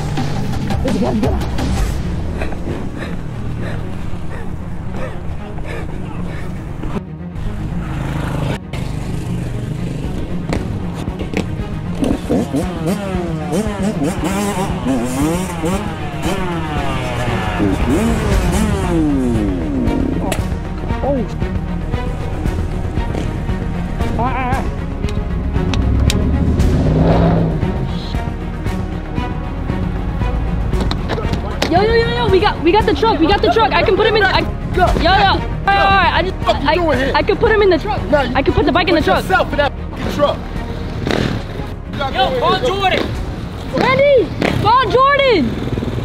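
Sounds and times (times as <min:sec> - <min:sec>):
music: 0:00.0 - 0:46.0
dirt bike engine revving: 0:07.4 - 0:20.6, 0:22.1 - 0:24.2, 0:24.8 - 0:28.3, 0:40.8 - 0:41.7, 0:42.9 - 0:46.0.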